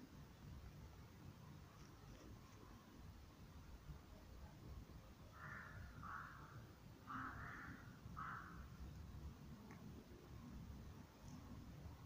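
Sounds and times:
rook cawing hoarsely: 5.3 - 8.8.

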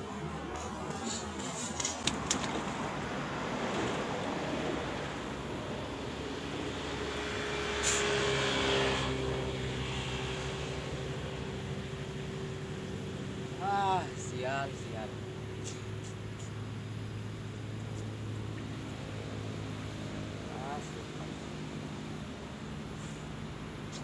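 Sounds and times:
steady background rush: 0.0 - 7.7
vehicle engine hum: 0.0 - 24.0.

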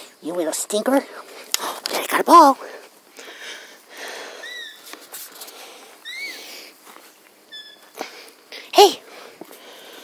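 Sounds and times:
puppy squeaking: 4.4 - 4.8, 6.0 - 6.4, 7.5 - 8.0.

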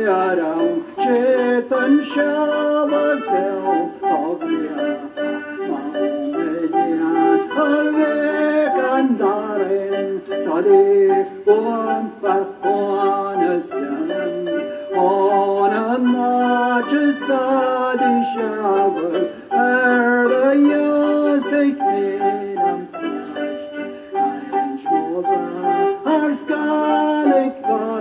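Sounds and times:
instrumental accompaniment: 0.0 - 28.0
man singing: 0.0 - 28.0.

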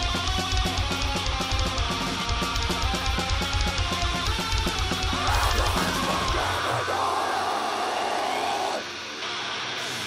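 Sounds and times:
metal band drums: 0.0 - 9.0
harsh sustained noise: 5.0 - 10.0.

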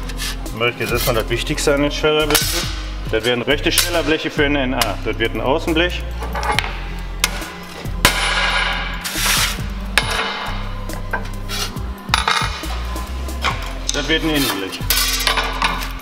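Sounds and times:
loud metal clang: 6.5 - 9.2, 9.9 - 10.7.

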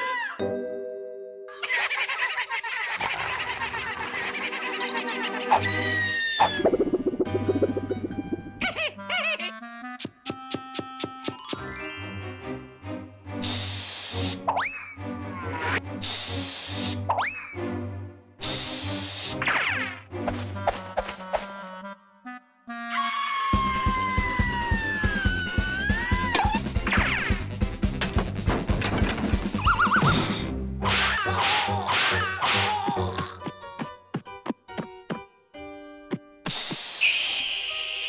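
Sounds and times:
background music: 0.1 - 2.0, 3.3 - 22.9, 23.5 - 36.6
wobbling warble effect: 6.4 - 8.8
background music with steady beat: 9.8 - 11.4
cartoon aerosol spray hissing: 13.4 - 14.4, 16.0 - 17.0, 18.4 - 19.4.

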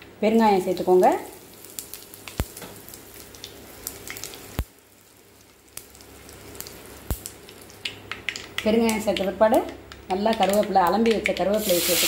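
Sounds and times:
seeds sizzling in hot oil: 0.6 - 9.0, 11.5 - 12.0.

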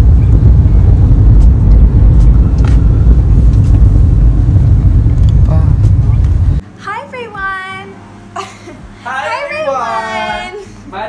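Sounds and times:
car rumbling on the road: 0.0 - 6.6.

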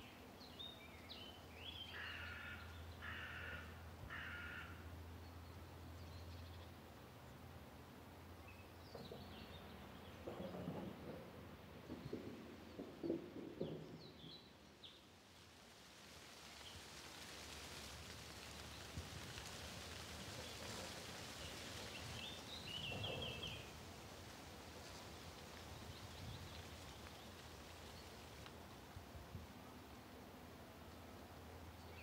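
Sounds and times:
steady outdoor hiss: 0.0 - 32.0
low rustle: 14.9 - 30.2
birds chirping: 20.3 - 23.7.

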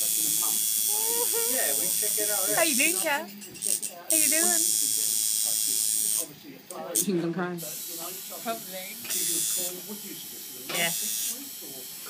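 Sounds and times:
tattoo machine buzzing: 0.0 - 12.0.

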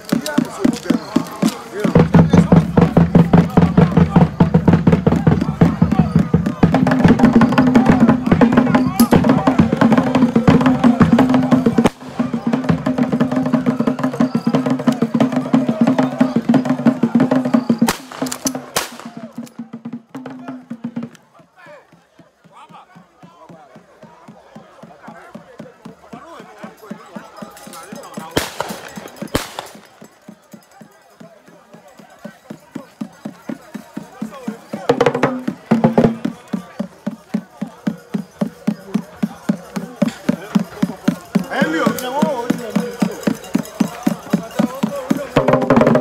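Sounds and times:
traditional percussion rhythm: 0.0 - 46.0
voices: 0.0 - 46.0
sharp cracks: 17.9 - 19.2, 28.4 - 29.9
hand drum beating: 34.9 - 46.0.

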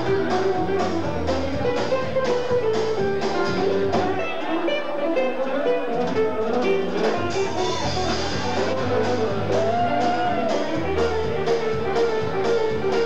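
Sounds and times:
drums: 0.0 - 13.0
electric bass: 0.0 - 13.0
plucked string instrument: 0.0 - 13.0.

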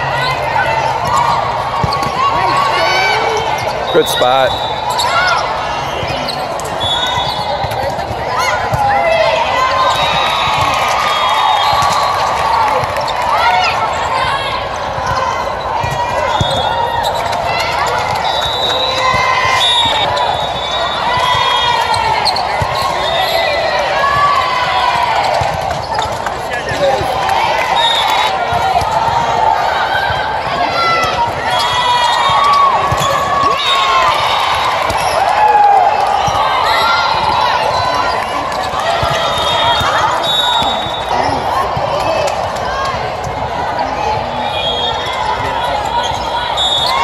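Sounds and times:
players calling out and chattering: 0.0 - 47.0.

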